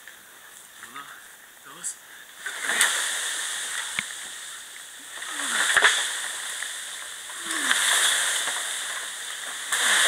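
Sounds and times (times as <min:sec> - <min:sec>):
bamboo dragged through grass: 0:02.4 - 0:10.0.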